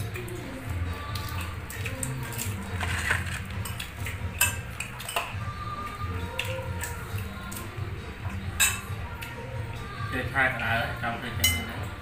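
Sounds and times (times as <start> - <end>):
metal spoon clinking on plates: 3.0 - 5.4, 8.6 - 9.0, 11.4 - 11.9.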